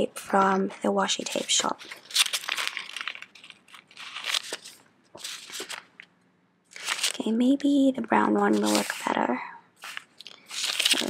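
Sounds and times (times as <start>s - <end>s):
sticker sheet rustling: 1.2s - 6.0s, 6.7s - 7.2s, 8.4s - 9.2s, 9.8s - 11.0s.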